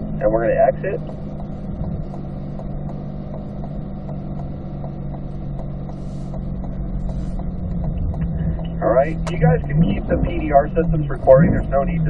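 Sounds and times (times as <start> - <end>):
car engine humming: 0.0 - 12.0
turn signal ticking: 0.0 - 12.0.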